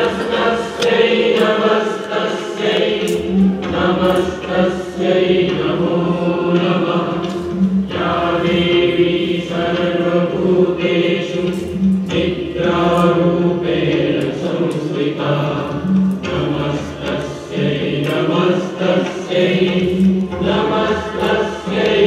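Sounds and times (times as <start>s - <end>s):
devotional chant singing: 0.0s - 22.0s.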